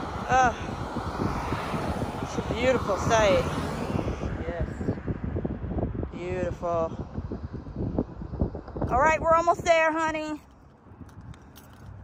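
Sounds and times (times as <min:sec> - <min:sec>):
wind buffeting microphone: 0:00.0 - 0:12.0
woman's voice: 0:08.9 - 0:10.5.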